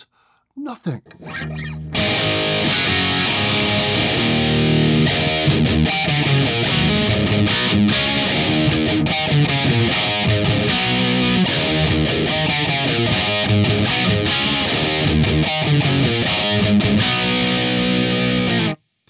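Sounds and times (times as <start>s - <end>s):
distorted electric guitar riff: 1.1s - 18.8s.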